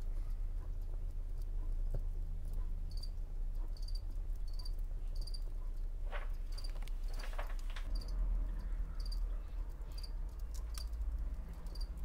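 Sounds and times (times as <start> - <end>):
low steady hum: 0.0 - 12.0
handling rustle: 6.0 - 8.0
high insect-like chirping: 11.6 - 12.0.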